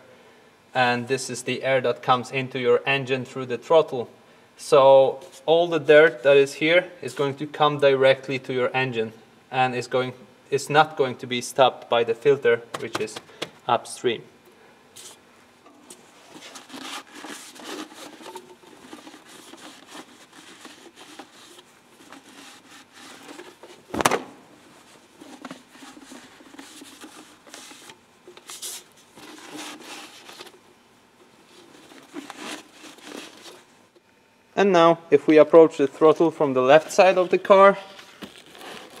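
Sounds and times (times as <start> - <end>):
rubber hose scraping and rustling: 15.8 - 30.6, 31.4 - 33.8, 36.7 - 39.0.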